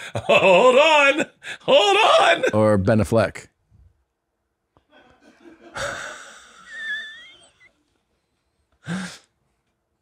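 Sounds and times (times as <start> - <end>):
man's wheezy laugh: 0.0 - 0.8, 4.9 - 7.7.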